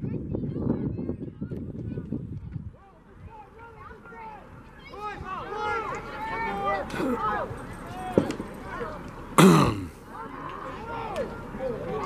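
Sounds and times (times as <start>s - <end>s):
distant voices: 0.1s - 12.0s.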